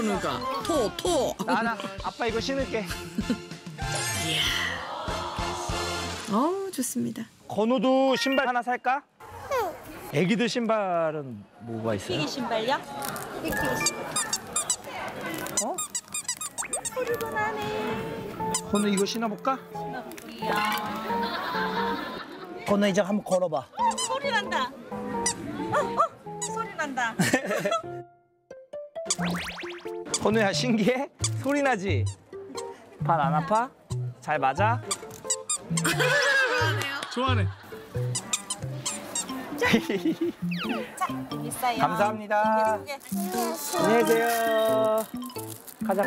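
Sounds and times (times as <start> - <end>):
background music: 0.0 - 8.5, 17.2 - 46.0
child's high voice: 9.4 - 9.9
squeaky shoe squeaks: 13.4 - 17.4, 18.4 - 19.2, 23.2 - 24.5, 25.2 - 26.7, 29.0 - 30.5, 31.2 - 32.8, 33.4 - 36.0, 38.0 - 39.4, 40.4 - 41.2, 45.1 - 45.6.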